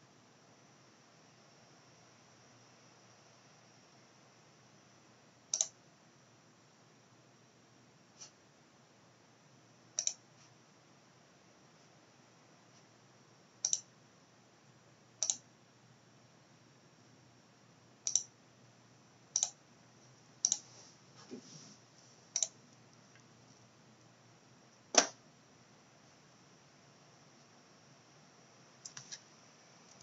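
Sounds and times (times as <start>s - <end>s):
faint room hiss: 0.0s - 30.0s
computer mouse button clicks: 5.5s - 5.8s, 10.0s - 10.2s, 13.6s - 13.9s, 15.2s - 15.4s, 18.0s - 18.3s, 19.4s - 19.6s.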